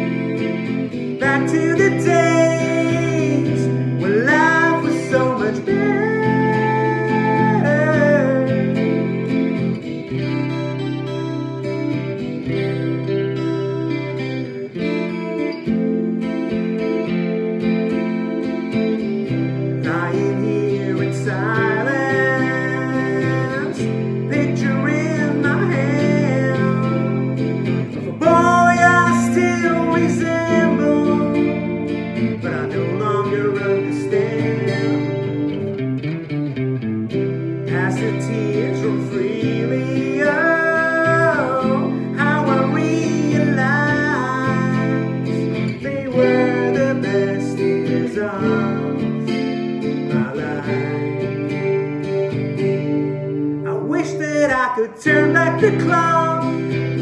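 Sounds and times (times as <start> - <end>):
man singing: 0.0 - 10.3, 19.6 - 35.5, 37.4 - 57.0
strummed acoustic guitar: 0.0 - 57.0.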